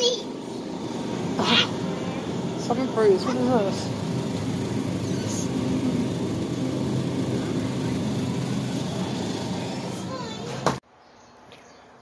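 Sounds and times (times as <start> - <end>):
supermarket hum and din: 0.0 - 10.8.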